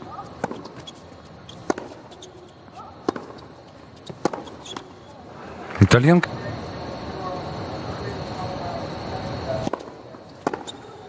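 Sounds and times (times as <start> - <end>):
tennis racket hitting ball: 0.1 - 0.9, 1.5 - 2.2, 3.0 - 4.8
crowd murmur: 5.2 - 9.8.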